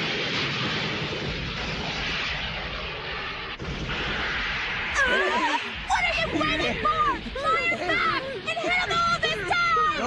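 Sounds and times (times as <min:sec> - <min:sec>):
cartoon voices talking: 0:05.0 - 0:10.0.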